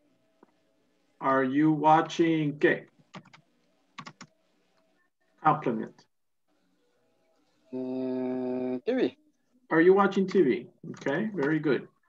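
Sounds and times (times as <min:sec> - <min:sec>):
keyboard typing: 0:03.0 - 0:04.4, 0:10.3 - 0:11.7.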